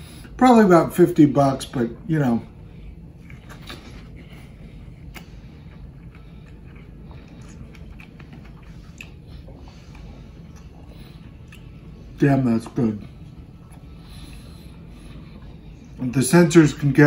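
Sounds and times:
steady low hum: 0.0s - 17.0s
person chewing: 2.9s - 15.9s
wet mouth clicks: 7.3s - 9.2s.

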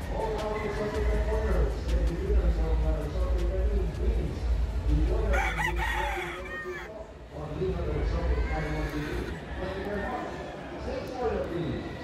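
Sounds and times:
murmur of crowded hall: 0.0s - 12.0s
rooster crowing: 5.3s - 6.9s.

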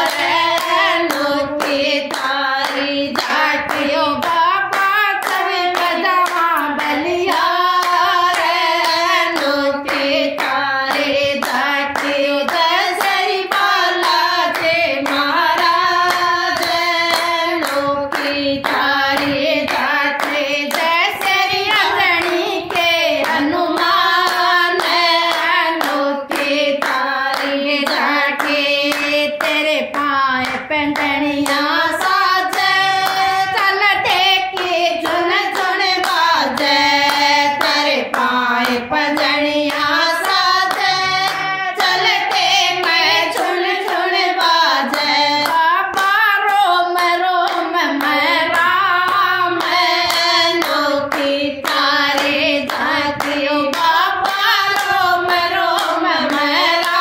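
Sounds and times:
hand claps: 0.0s - 57.0s
women singing in unison: 0.0s - 57.0s.

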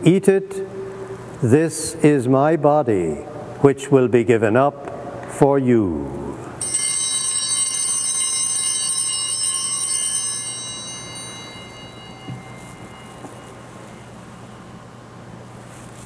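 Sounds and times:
altar bell ringing: 6.6s - 15.0s.

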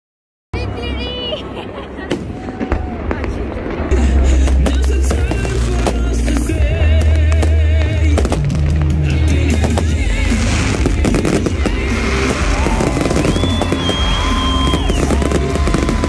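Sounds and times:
fireworks bursting with bangs: 2.0s - 16.0s.

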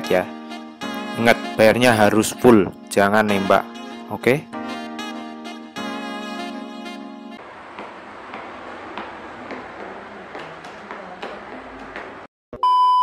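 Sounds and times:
held music chord: 0.0s - 7.4s
high test-tone beep: 12.6s - 13.0s.

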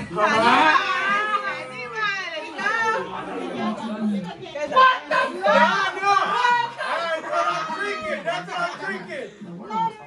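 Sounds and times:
adults talking over one another: 0.0s - 10.0s.

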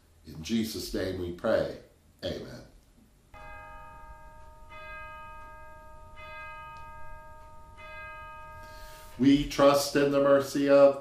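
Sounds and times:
bell ringing: 3.4s - 10.0s.

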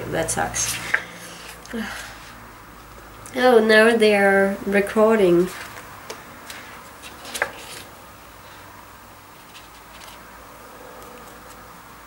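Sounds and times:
paper rustle: 6.4s - 7.9s, 9.4s - 10.3s.

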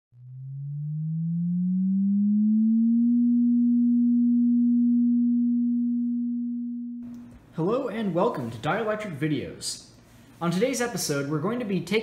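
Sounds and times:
low electronic tone gliding up: 0.1s - 7.1s.

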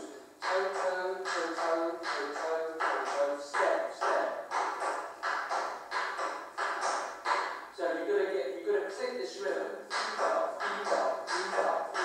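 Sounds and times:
tap shoes striking the floor: 0.4s - 7.6s, 9.9s - 12.0s.

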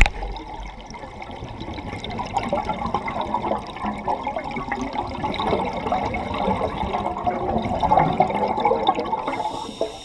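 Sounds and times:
underwater bubbles gurgling: 0.0s - 10.0s.

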